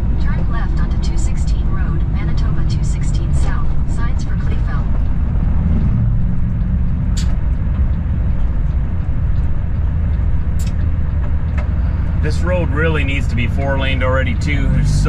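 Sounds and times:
diesel truck engine running: 0:00.0 - 0:15.0
road and wind noise: 0:00.0 - 0:15.0.

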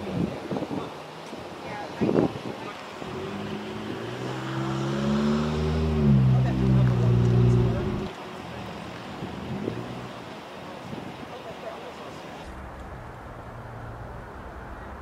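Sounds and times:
vehicle engine passing by: 0:03.0 - 0:08.8.

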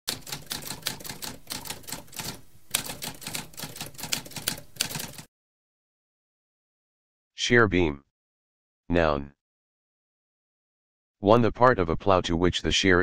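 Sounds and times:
typewriter keystroke clicks: 0:00.1 - 0:05.3.

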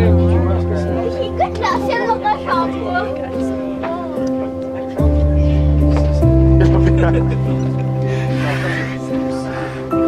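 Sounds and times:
background music with deep bass: 0:00.0 - 0:10.0
people talking and exclaiming: 0:00.0 - 0:10.0.

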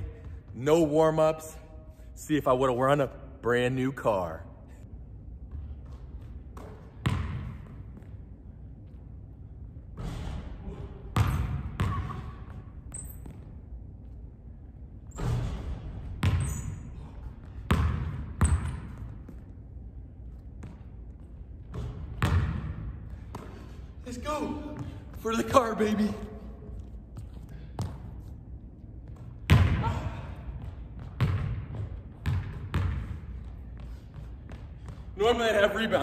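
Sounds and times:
basketball bouncing in echoing hall: 0:00.0 - 0:36.0.

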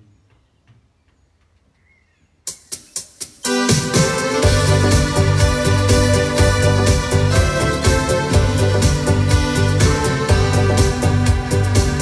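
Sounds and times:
faint bird chirp: 0:00.0 - 0:03.3
electronic organ drum rhythm: 0:02.5 - 0:12.0.

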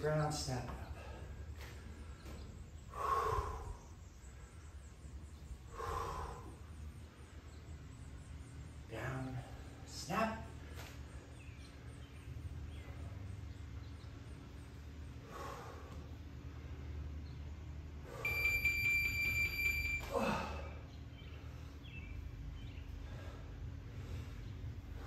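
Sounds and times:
steady low hum: 0:00.0 - 0:25.0
high electronic beep: 0:18.2 - 0:20.1.

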